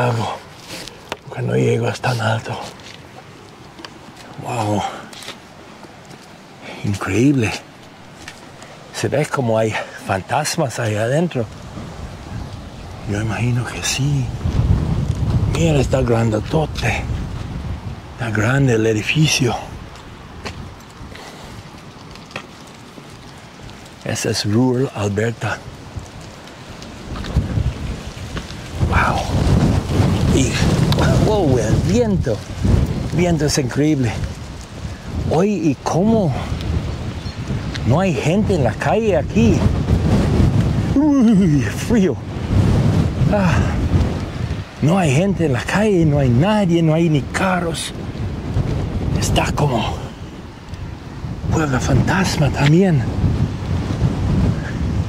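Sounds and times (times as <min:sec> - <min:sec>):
gusty wind buffeting microphone: 0:00.0 - 0:55.0.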